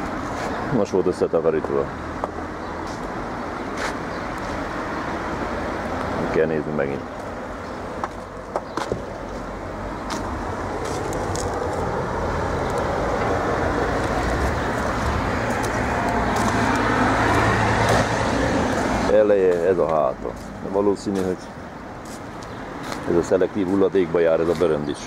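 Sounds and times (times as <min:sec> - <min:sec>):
passing cars: 0:00.0 - 0:25.0.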